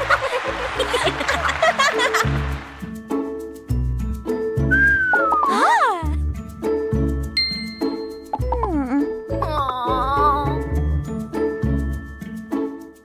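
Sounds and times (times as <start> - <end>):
upbeat children's music: 0.0 - 13.0
swooping whistle-like tone: 4.7 - 5.5
bright ding: 7.4 - 8.4.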